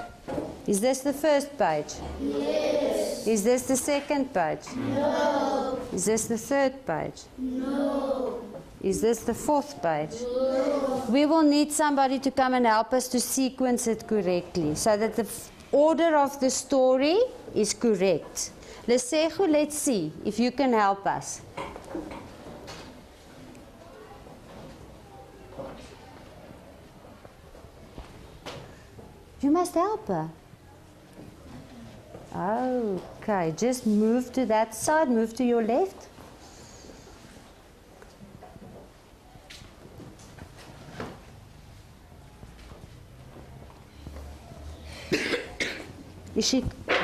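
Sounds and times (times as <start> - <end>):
children shuffling: 10.1 - 11.3, 39.7 - 45.2.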